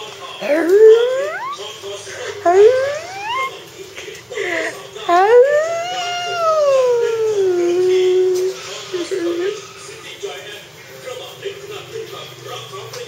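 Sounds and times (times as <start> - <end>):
dog howling: 0.4 - 1.6, 2.4 - 3.5, 5.1 - 9.6.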